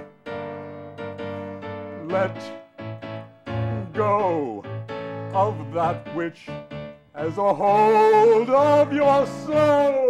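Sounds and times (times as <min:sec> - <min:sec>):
keyboard tango chords: 0:00.0 - 0:10.0
person singing: 0:01.8 - 0:02.7, 0:03.5 - 0:06.6, 0:07.2 - 0:10.0.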